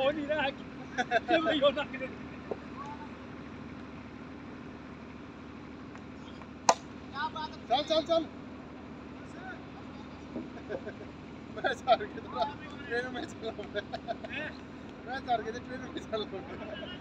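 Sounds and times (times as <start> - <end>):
steady low hum: 0.0 - 17.0
cricket bat striking ball: 6.6 - 7.0.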